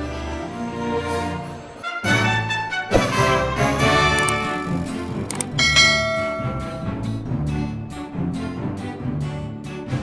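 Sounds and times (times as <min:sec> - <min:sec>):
background music: 0:00.0 - 0:10.0
bell ding: 0:05.6 - 0:07.0.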